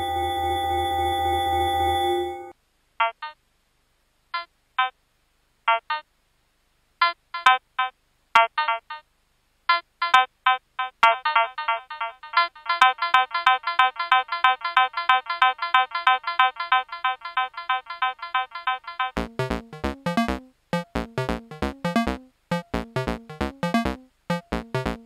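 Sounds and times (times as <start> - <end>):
low drum sequence: 19.2 - 25.0
synthesizer beep-like notes: 19.2 - 25.0.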